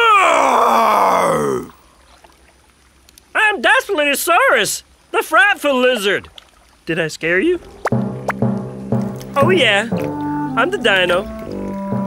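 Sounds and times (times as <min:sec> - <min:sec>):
cartoon dinosaur roar: 0:00.1 - 0:01.8.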